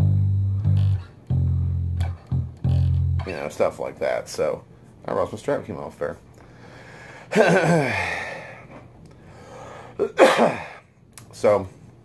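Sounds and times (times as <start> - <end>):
steady low hum: 0.0 - 12.0
man sighing: 6.4 - 10.8.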